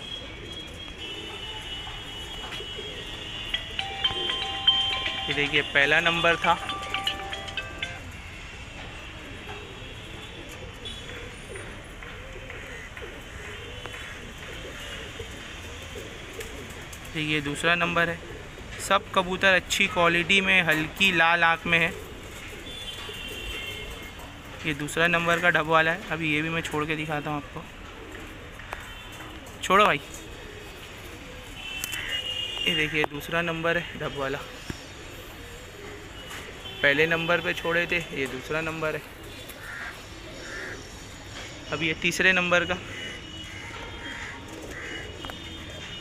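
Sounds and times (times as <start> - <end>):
pigeons cooing: 0.0 - 8.1, 9.1 - 25.6, 26.3 - 32.6, 33.2 - 46.0
man talking: 5.0 - 7.2, 18.8 - 22.0, 24.6 - 27.7, 29.6 - 30.1, 32.7 - 34.5, 36.8 - 39.1, 41.7 - 42.8.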